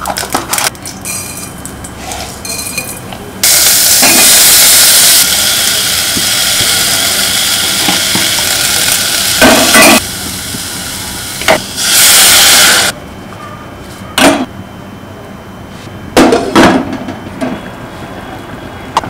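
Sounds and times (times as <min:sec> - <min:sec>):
hot oil sizzling in a pan: 0:03.4 - 0:12.9.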